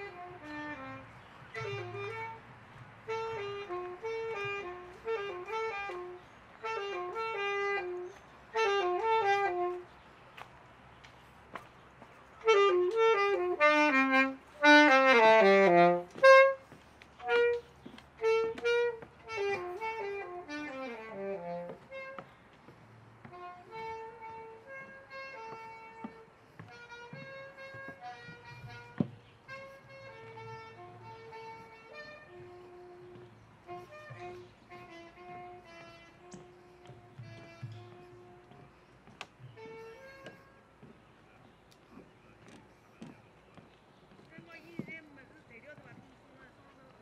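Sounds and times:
saxophone playing: 0.0 - 10.0, 12.4 - 40.9.

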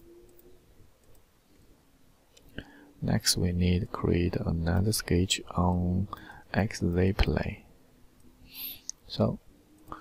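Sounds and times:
faint mouse clicks: 0.2 - 1.7, 2.3 - 2.7, 8.2 - 9.1, 9.7 - 10.0
person speaking: 3.0 - 7.7.

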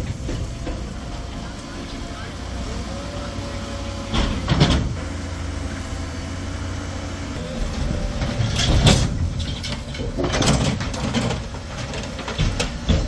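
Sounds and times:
diesel engine rumbling: 0.0 - 13.0.

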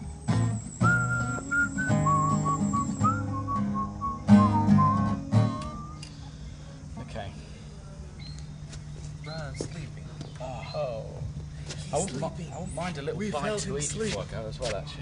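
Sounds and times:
strummed acoustic guitar: 0.0 - 6.0
man whistling: 0.2 - 6.1.

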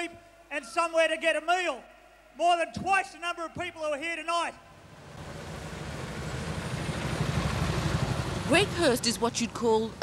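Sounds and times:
street traffic: 4.6 - 10.0
motorcycle engine rumble: 4.8 - 10.0.

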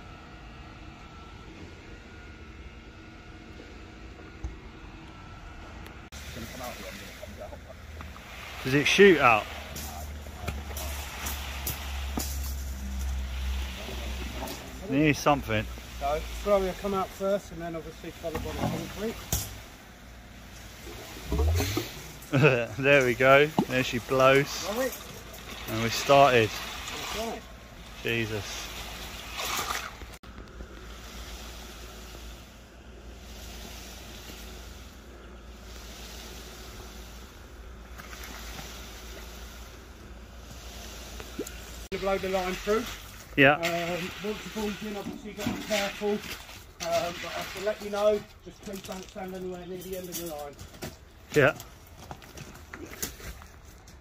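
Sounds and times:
concrete pump droning: 0.0 - 54.0
low running hum: 0.0 - 54.0.

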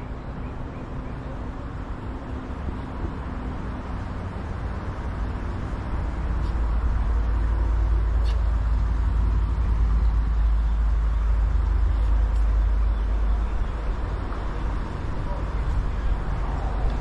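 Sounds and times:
motor vehicle rumbling: 0.0 - 17.0.

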